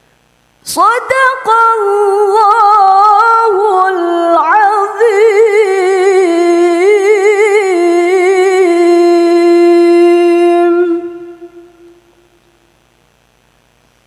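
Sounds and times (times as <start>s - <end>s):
person chanting recitation: 0.7s - 12.2s.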